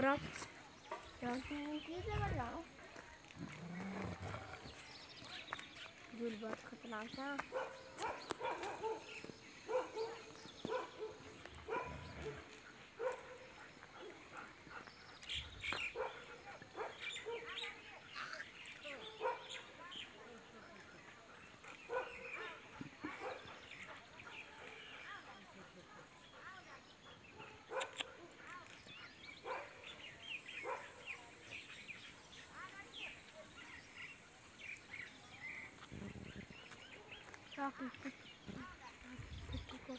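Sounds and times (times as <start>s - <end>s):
small birds chirping: 0.0s - 39.9s
dogs barking: 7.4s - 17.9s, 18.8s - 20.5s, 21.6s - 28.7s, 29.4s - 31.5s.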